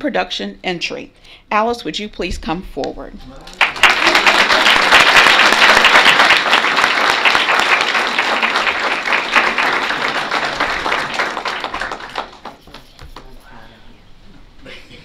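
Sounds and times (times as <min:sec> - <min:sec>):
audience applause: 0:03.5 - 0:13.3.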